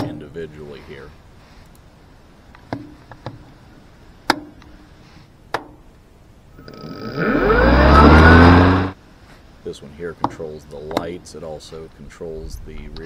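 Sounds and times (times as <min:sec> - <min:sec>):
electric mower motor whining: 0:06.6 - 0:09.0.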